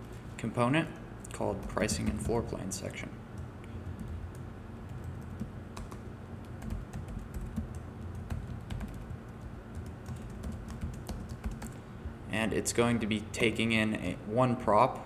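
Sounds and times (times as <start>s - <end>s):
low steady hum: 0.0s - 15.0s
keyboard typing clicks: 3.4s - 11.8s.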